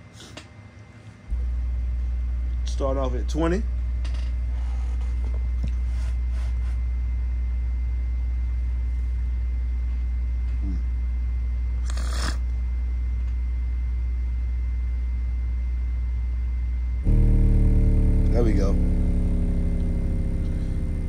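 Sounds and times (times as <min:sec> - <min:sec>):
subwoofer playing deep test tone: 0:01.3 - 0:04.4, 0:17.0 - 0:21.0.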